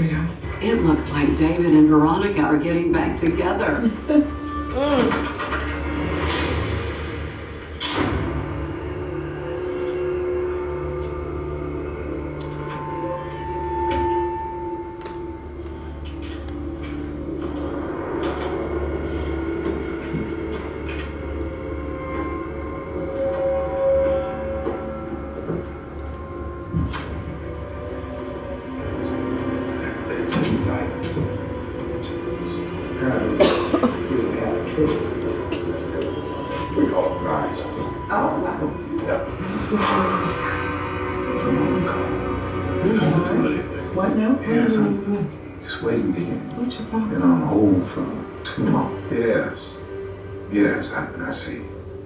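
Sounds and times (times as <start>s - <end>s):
dramatic score music from television: 0.0s - 52.0s
low voices: 4.6s - 5.4s
person coughing: 4.8s - 5.3s, 33.4s - 34.1s.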